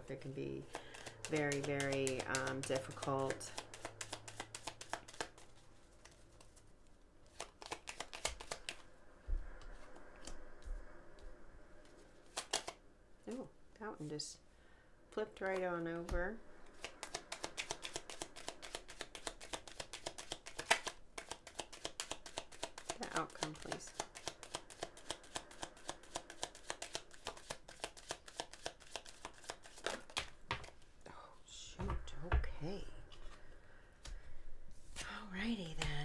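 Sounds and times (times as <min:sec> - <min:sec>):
cards being shuffled: 0:00.6 - 0:08.9, 0:09.6 - 0:10.4, 0:11.9 - 0:12.8, 0:15.4 - 0:30.9, 0:34.9 - 0:36.0
sharp card snaps: 0:07.3 - 0:08.8, 0:12.3 - 0:12.8.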